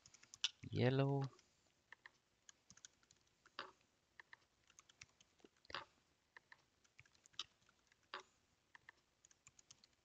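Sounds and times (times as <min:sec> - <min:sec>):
typing on keyboard: 0:00.0 - 0:00.6, 0:02.0 - 0:05.8, 0:06.4 - 0:08.2, 0:08.8 - 0:10.0.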